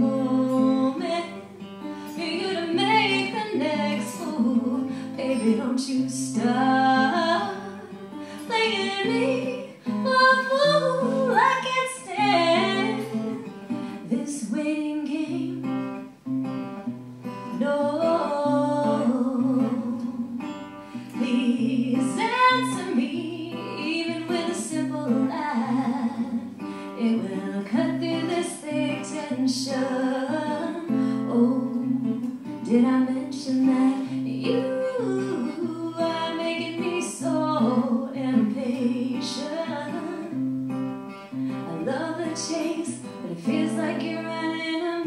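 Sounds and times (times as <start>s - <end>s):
strummed acoustic guitar: 0.0s - 45.0s
woman singing folk song: 0.0s - 45.0s.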